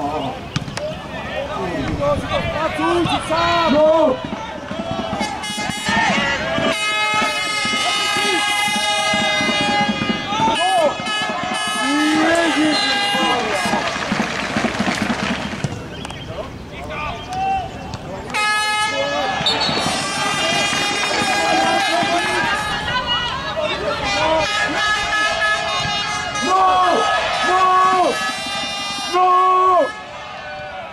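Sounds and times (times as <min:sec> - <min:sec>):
men shouting: 0:02.3 - 0:14.0, 0:18.9 - 0:22.9, 0:26.3 - 0:30.9
horn blowing long blasts: 0:05.2 - 0:14.0, 0:18.3 - 0:23.2, 0:23.8 - 0:30.9.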